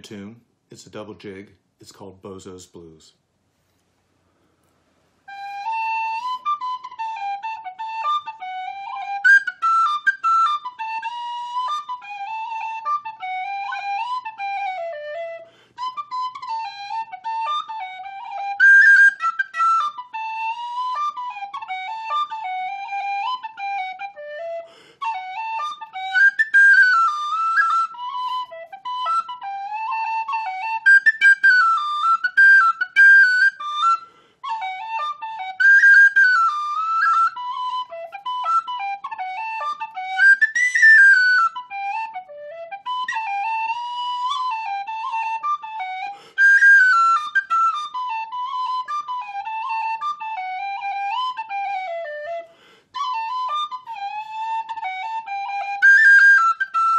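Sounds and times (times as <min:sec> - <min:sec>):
tin whistle playing jig: 0:05.3 - 0:56.9.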